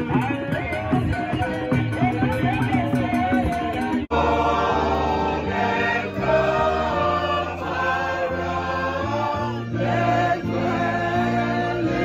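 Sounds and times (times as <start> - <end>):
choir singing gospel song: 4.1 - 12.0.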